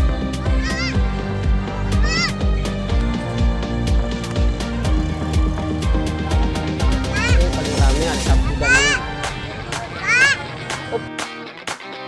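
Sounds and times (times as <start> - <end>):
loud music with steady beat: 0.0 - 12.0.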